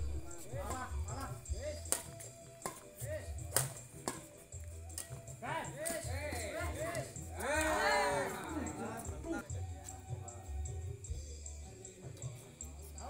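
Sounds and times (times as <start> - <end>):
music: 0.0 - 13.0
voices: 0.0 - 13.0
racket striking shuttlecock: 1.9 - 2.9, 3.5 - 5.2, 5.8 - 6.1.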